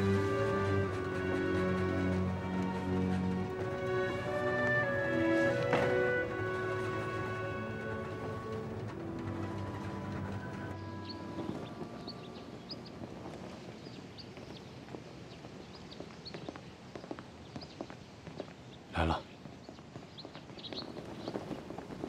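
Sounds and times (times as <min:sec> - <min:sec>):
background music: 0:00.0 - 0:13.7
footsteps: 0:00.0 - 0:18.6.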